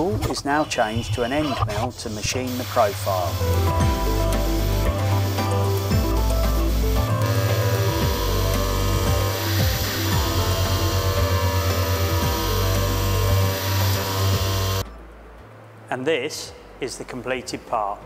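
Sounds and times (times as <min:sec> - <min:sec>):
background music: 0:00.0 - 0:18.0
milling machine cutting metal: 0:01.8 - 0:14.8.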